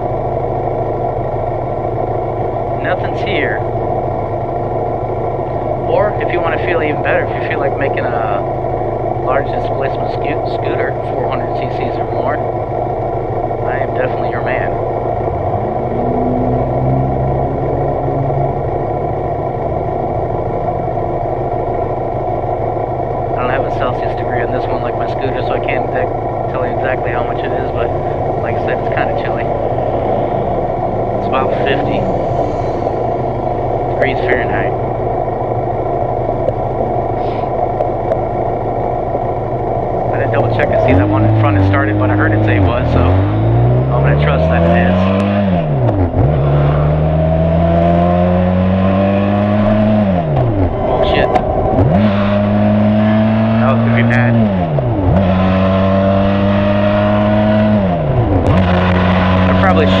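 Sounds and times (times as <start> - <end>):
motorcycle engine idling: 0.0 - 43.0
motorcycle accelerating through gears: 6.9 - 60.0.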